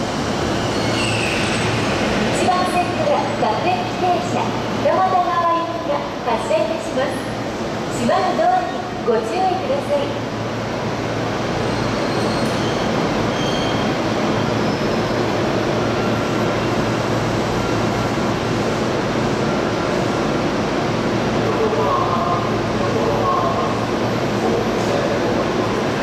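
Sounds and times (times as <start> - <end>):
electric train rumbling: 0.0 - 26.0
high wheel squeal: 0.5 - 2.1, 11.6 - 15.2.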